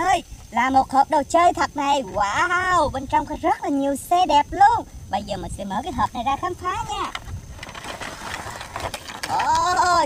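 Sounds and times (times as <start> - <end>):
plastic crackles: 7.0 - 10.0
packaging scraping on sand: 7.2 - 9.8
plastic packaging rustling: 7.3 - 9.5.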